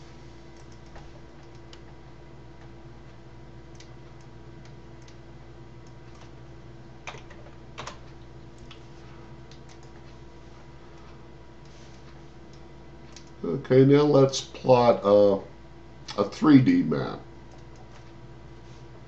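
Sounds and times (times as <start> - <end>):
low hum: 0.0 - 19.0
keyboard typing: 0.5 - 1.9, 7.0 - 8.8, 9.5 - 10.1.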